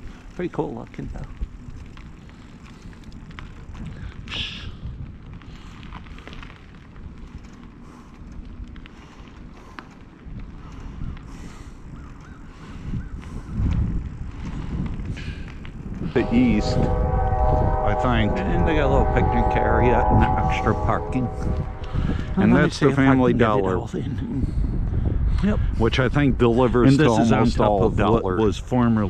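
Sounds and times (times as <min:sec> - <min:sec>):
wind buffeting microphone: 0:00.0 - 0:29.0
low rumble: 0:13.8 - 0:28.2.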